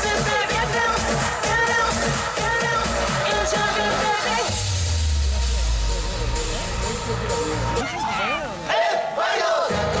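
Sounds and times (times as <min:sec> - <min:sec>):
dance music with drum beat: 0:00.0 - 0:10.0.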